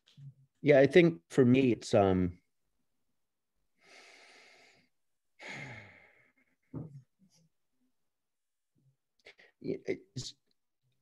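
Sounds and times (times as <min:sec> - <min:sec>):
person sighing: 0:05.4 - 0:06.4.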